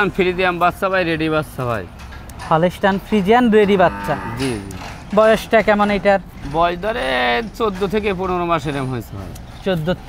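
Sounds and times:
cow mooing: 0:03.6 - 0:05.0.

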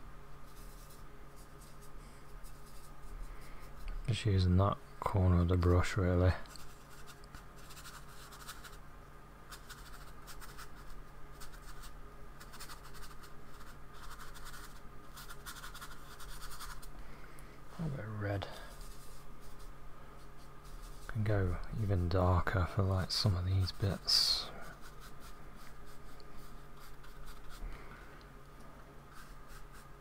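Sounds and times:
paintbrush scrubbing paint: 0:00.5 - 0:03.9, 0:06.5 - 0:08.8, 0:09.5 - 0:16.9, 0:18.6 - 0:21.9, 0:22.6 - 0:27.6, 0:29.1 - 0:30.0.

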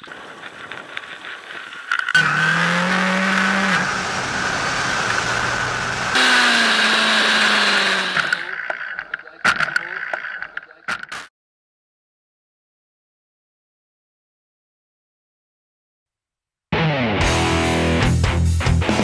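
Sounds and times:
motorcycle engine revving high: 0:02.2 - 0:08.6.

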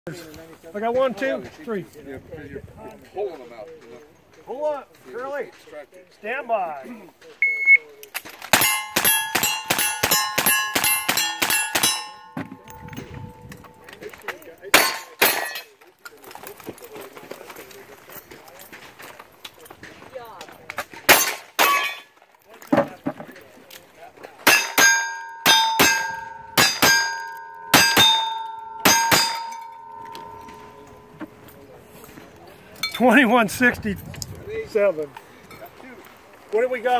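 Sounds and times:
steel plate ringing: 0:08.6 - 0:13.8, 0:24.4 - 0:31.6.

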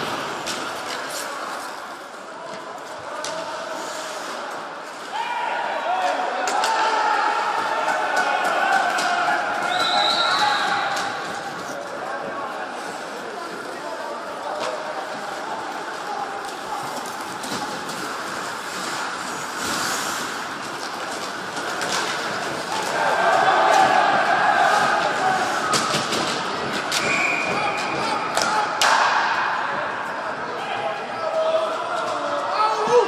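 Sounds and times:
spectators' voices: 0:00.0 - 0:33.0
hockey puck knocking boards: 0:20.8 - 0:30.4.

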